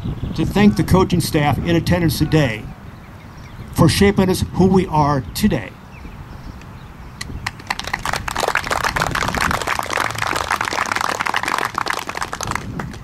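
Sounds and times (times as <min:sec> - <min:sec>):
audience applauding: 0:07.4 - 0:13.0.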